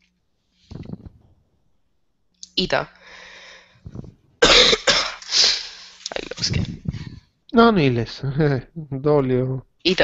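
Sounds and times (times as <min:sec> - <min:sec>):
person coughing: 0:04.0 - 0:05.8.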